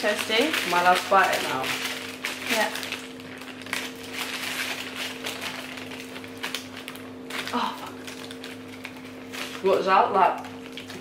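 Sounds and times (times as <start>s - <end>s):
packaging crinkling: 0.0s - 11.0s
steady hum: 0.0s - 11.0s.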